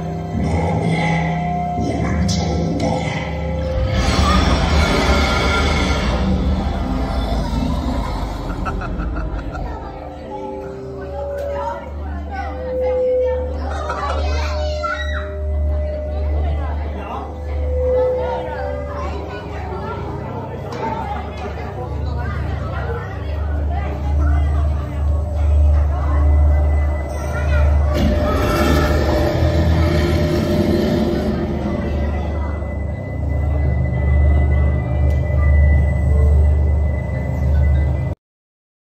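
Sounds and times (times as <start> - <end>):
steady deep rumble: 0.0 - 10.3, 27.8 - 37.1
children's voices: 0.0 - 32.9
audience chatter: 0.0 - 38.2
soundtrack with long held notes: 0.0 - 38.2.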